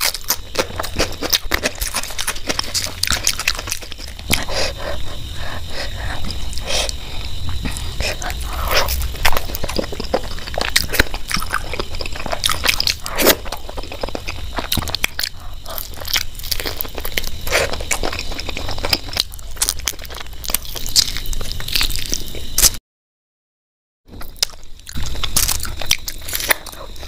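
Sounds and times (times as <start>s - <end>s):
wet mouth clicks and crunches: 0.0s - 5.2s, 6.1s - 22.8s, 24.2s - 27.0s
person chewing meat: 0.0s - 22.8s, 24.2s - 27.0s.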